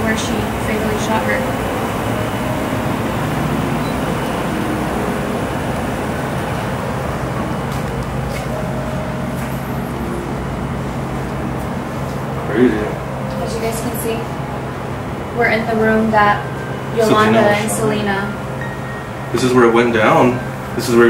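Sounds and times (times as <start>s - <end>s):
low mechanical hum and rumble: 0.0s - 21.0s.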